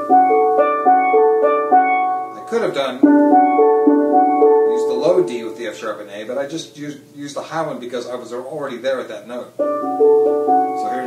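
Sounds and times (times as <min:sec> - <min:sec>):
steel pan ringing notes: 0:00.0 - 0:06.0.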